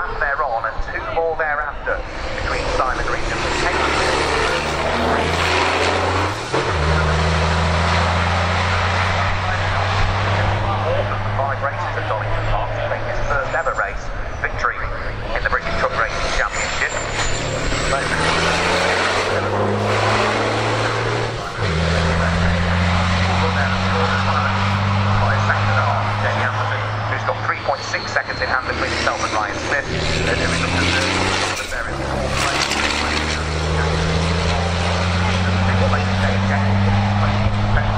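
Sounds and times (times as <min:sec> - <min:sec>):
truck diesel engines droning: 0:00.0 - 0:37.9
dense rushing noise: 0:01.6 - 0:37.9.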